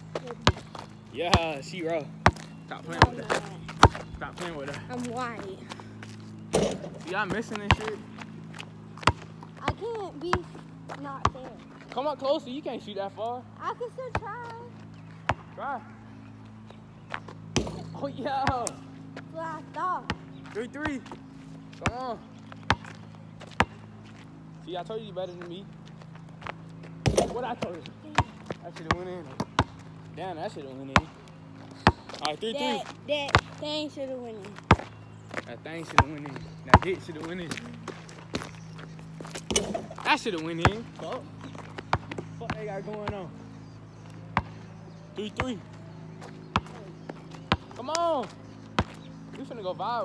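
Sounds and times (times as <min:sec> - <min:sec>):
basketball bouncing on asphalt: 0:00.0 - 0:12.4, 0:13.1 - 0:49.9
steady low hum: 0:00.0 - 0:50.0.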